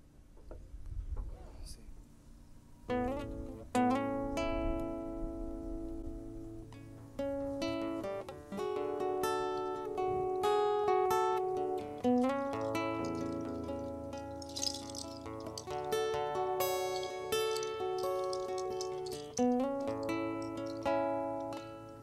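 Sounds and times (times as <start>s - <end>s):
acoustic guitar plucked chords: 2.9s - 22.0s.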